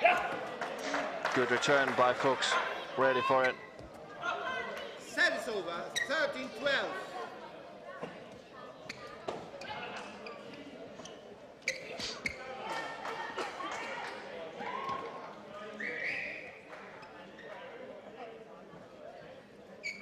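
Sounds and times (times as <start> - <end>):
shoes squeaking on court: 5.8 - 6.4, 8.0 - 12.5, 19.8 - 20.0.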